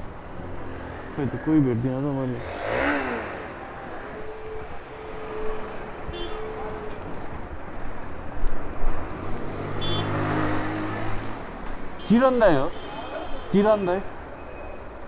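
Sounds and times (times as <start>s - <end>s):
car engines passing: 0.0s - 15.0s
motorbike engines passing: 0.0s - 15.0s
road noise: 0.0s - 15.0s.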